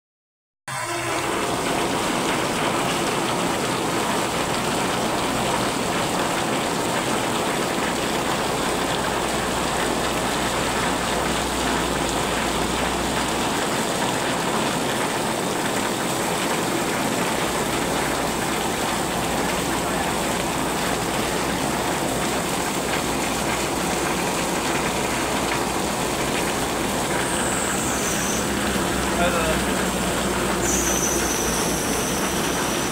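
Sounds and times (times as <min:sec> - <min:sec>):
water pouring off roof: 0:01.0 - 0:32.9
heavy rain on street and car: 0:01.1 - 0:32.9.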